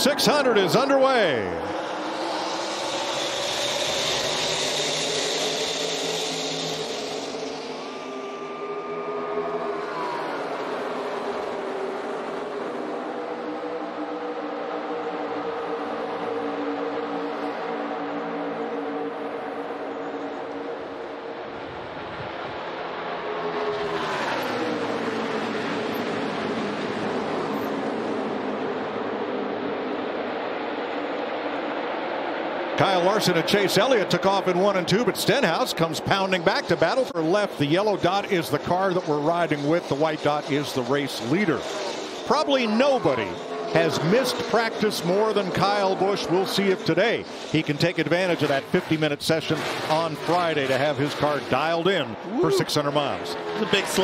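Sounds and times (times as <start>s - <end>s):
stock cars racing at full throttle: 0.0s - 54.0s.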